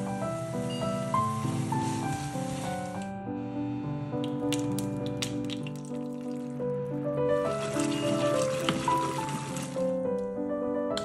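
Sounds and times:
piano background music: 0:00.0 - 0:11.0
wooden spoon stirring: 0:00.1 - 0:03.1, 0:07.2 - 0:10.2.

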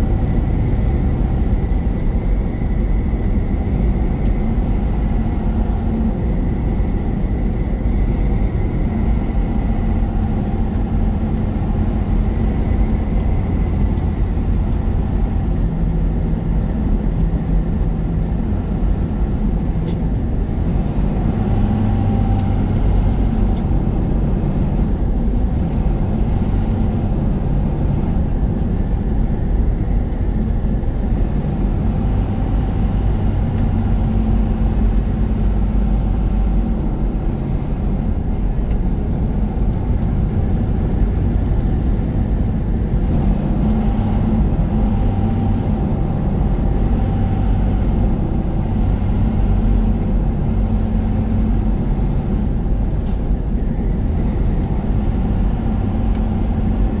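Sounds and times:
road noise: 0:00.0 - 0:57.0
truck engine drone: 0:00.0 - 0:57.0.

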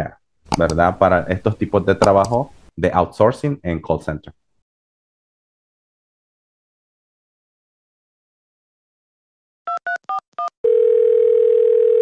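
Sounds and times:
steady telephone tone: 0:10.6 - 0:12.0.

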